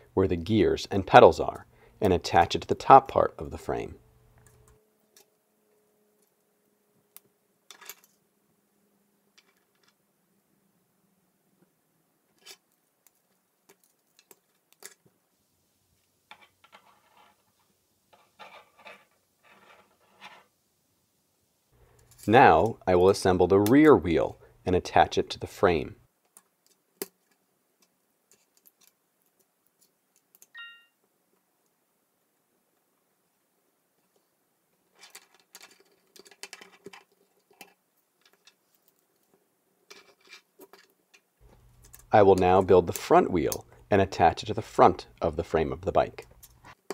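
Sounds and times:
plastic parts clicking and rattling: 9.4s - 10.0s, 26.3s - 29.4s, 34.9s - 42.1s
plastic pieces clicking together: 35.0s - 39.0s.

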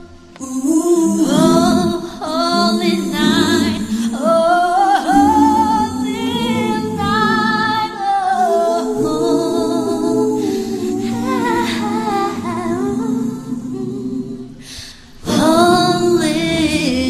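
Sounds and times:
man and woman singing in harmony: 0.0s - 17.0s.

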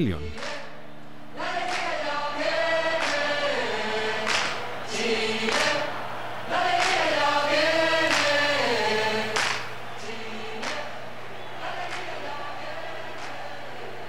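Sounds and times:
group of voices singing: 0.0s - 14.0s.

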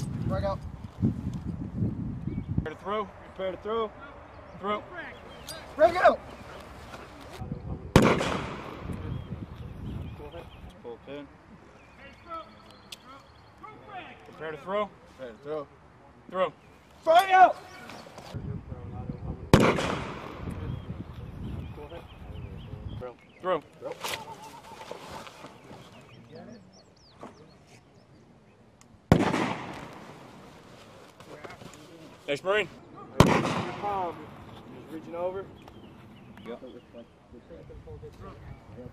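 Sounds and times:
hand grenade blast: 8.0s - 8.9s, 19.6s - 20.4s, 29.1s - 30.1s, 33.2s - 34.0s.

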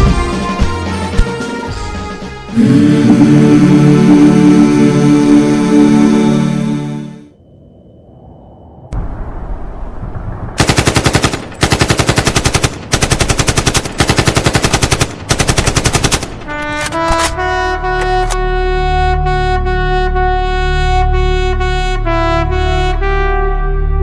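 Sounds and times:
brass music: 0.0s - 7.3s, 16.4s - 24.0s
automatic gunfire bursts: 10.6s - 16.6s.

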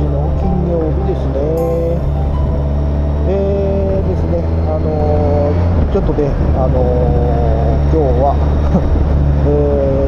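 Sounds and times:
held melodic notes: 0.0s - 5.8s
motorcycle engine drone: 0.0s - 10.0s
road and wind noise: 0.0s - 10.0s.

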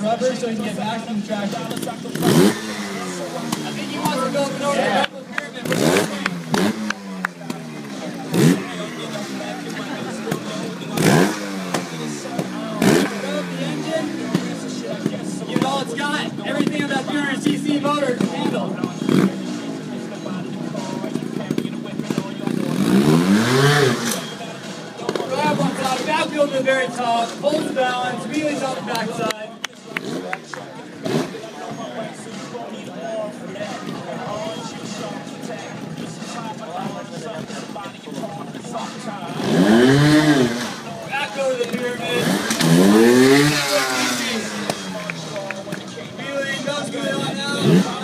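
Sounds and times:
motorcycle engine revving: 0.0s - 29.0s, 29.8s - 32.4s, 33.3s - 48.0s.

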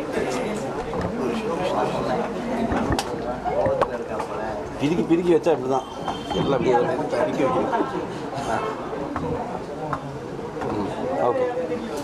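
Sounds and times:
overlapping indistinct chatter: 0.0s - 12.0s.

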